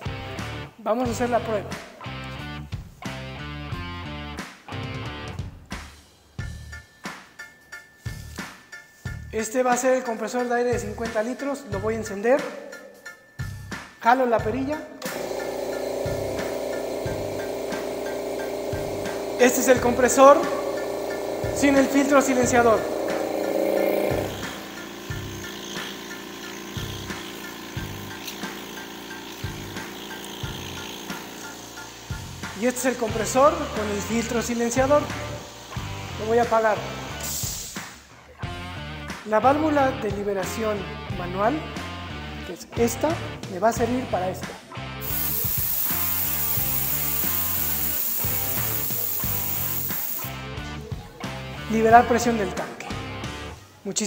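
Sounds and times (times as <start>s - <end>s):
background music: 0.0s - 54.0s
air compressor running: 15.0s - 37.9s, 45.0s - 50.5s.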